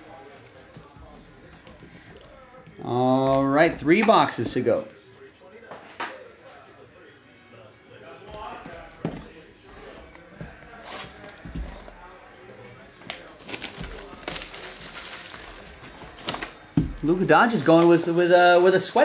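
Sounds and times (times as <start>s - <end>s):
plastic wrapping crinkling: 13.0s - 16.6s.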